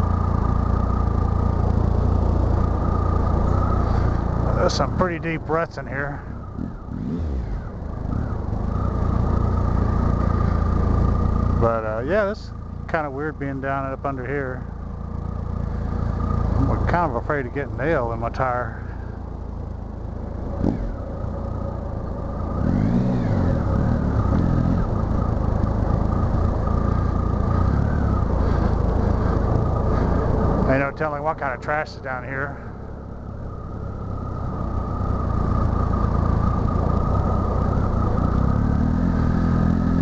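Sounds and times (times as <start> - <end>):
thin steady whine: 0.0 - 6.9
motorcycle engine rumbling: 0.0 - 40.0.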